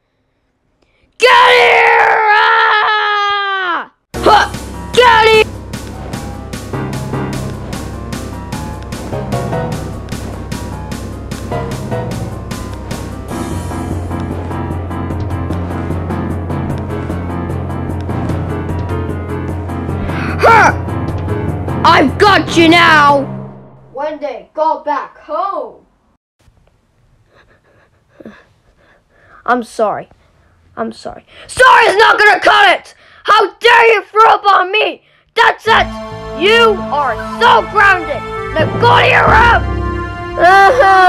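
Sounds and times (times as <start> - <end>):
cartoon character crying out: 1.2 - 5.4, 40.4 - 41.0
background music with ticking beat: 4.2 - 23.0
speech: 30.8 - 39.6.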